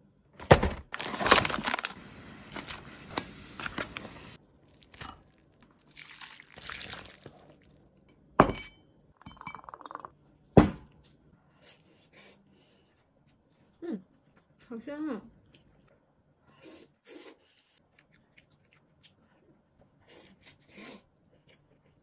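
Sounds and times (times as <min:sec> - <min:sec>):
plastic sachets rustling: 0:00.9 - 0:04.9.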